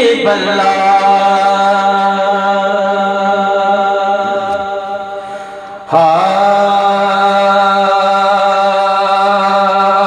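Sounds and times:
man singing unaccompanied: 0:00.0 - 0:04.7, 0:05.9 - 0:10.0.

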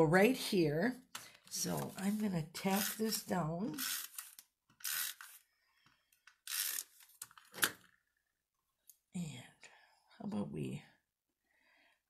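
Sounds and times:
paper rustling: 0:01.2 - 0:03.2.

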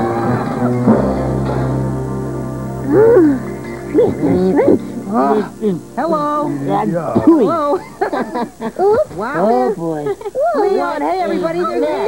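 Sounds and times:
background music: 0:00.0 - 0:08.1.

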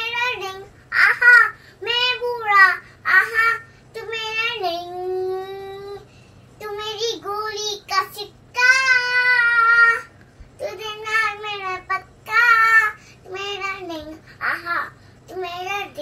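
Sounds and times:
girl singing unaccompanied: 0:00.0 - 0:16.0.

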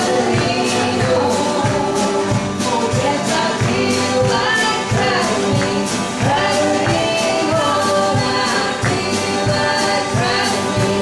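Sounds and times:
acoustic guitar: 0:00.0 - 0:11.0
man and woman singing: 0:00.0 - 0:11.0.

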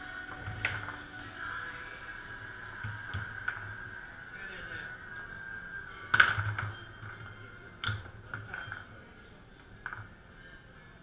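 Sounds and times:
foosball ball clacking: 0:00.2 - 0:01.2, 0:02.7 - 0:03.8, 0:06.0 - 0:09.0, 0:09.6 - 0:10.2.

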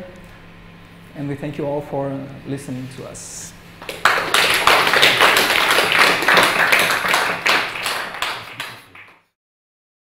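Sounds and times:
audience applauding: 0:03.8 - 0:09.3.

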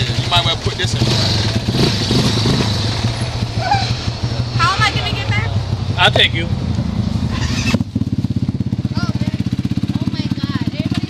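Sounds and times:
quad bike engine idling: 0:00.0 - 0:11.0.

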